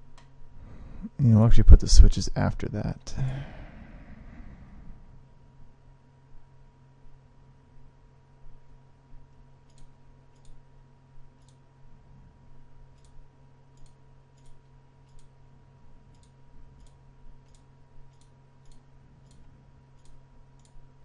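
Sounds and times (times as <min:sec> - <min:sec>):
low electrical hum: 0:00.0 - 0:21.0.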